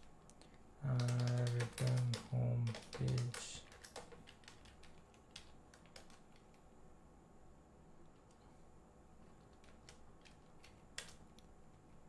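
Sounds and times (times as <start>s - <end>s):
man speaking in low voice: 0.8s - 3.7s
computer keyboard typing: 0.8s - 6.6s, 9.4s - 11.5s.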